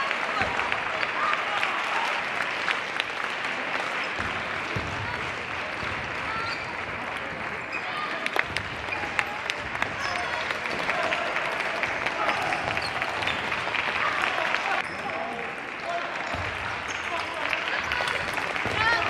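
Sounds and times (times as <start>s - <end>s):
hubbub of voices: 0.0s - 19.0s.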